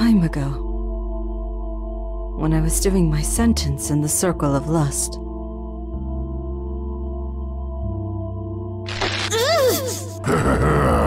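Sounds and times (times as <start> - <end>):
background music: 0.0 - 11.0
pained vocal cry: 9.2 - 11.0.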